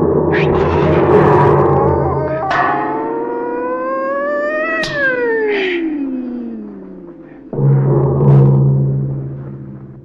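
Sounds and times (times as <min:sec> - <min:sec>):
man's high-pitched battle cry: 0:00.5 - 0:07.2.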